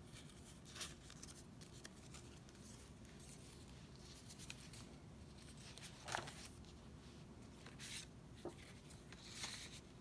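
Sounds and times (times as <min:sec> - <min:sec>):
paper page rustling: 0:00.0 - 0:10.0.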